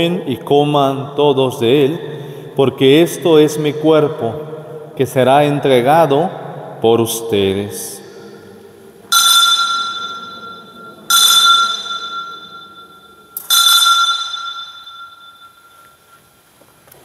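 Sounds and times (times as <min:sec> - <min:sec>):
altar bell ringing: 0:09.1 - 0:16.4.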